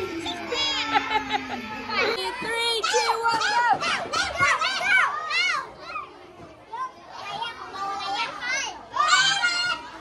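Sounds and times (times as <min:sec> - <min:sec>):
young children talking and calling: 0:00.0 - 0:10.0.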